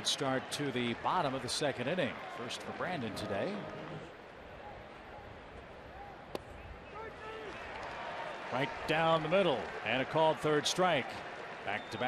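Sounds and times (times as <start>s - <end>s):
crowd murmur: 3.0s - 4.2s.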